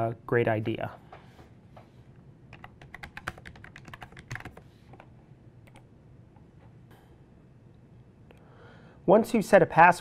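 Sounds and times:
computer keyboard typing: 2.5s - 5.9s.

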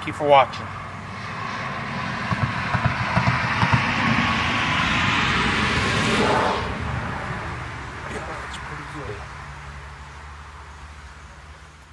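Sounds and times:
vehicle passing by: 0.0s - 11.9s.

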